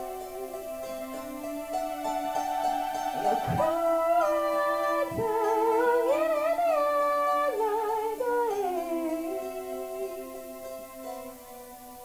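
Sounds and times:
woman humming a melody: 0.0 - 1.7, 3.0 - 10.8
keyboard piano chords: 0.0 - 12.0.

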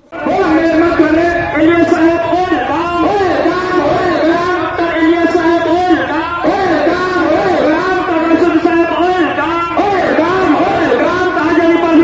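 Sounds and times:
crowd noise: 0.0 - 12.0
man chanting in sing-song voice: 0.0 - 12.0.

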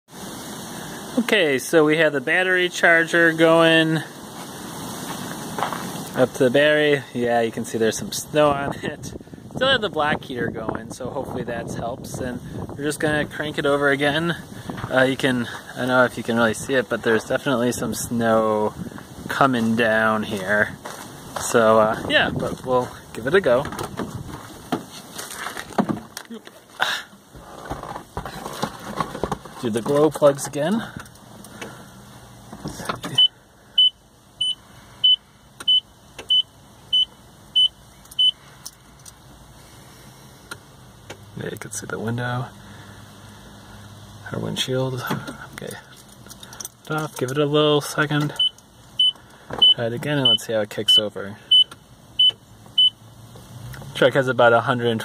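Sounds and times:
high electronic warning beep: 33.2 - 38.4, 48.3 - 53.0.

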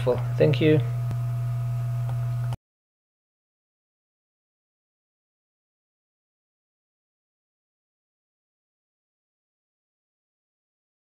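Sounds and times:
low electrical hum: 0.0 - 2.6.

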